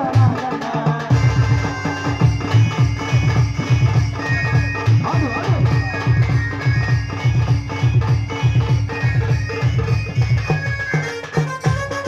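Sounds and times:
steady drum beat: 0.0s - 12.0s
electronic keyboard melody: 1.2s - 12.0s.

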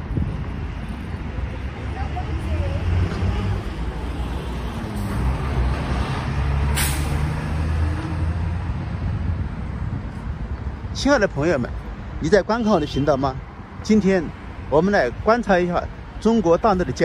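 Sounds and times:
bus engine droning: 0.0s - 10.5s
air brake hiss: 6.7s - 7.2s.

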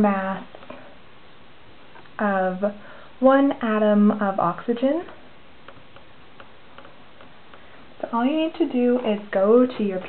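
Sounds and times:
background hiss: 0.0s - 10.0s
marker ticking on whiteboard: 5.6s - 7.7s.

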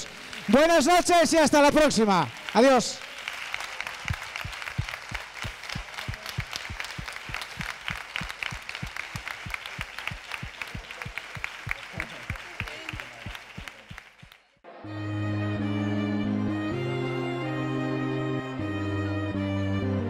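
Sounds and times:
audience applauding: 0.0s - 14.6s
low thumps: 4.0s - 11.5s.

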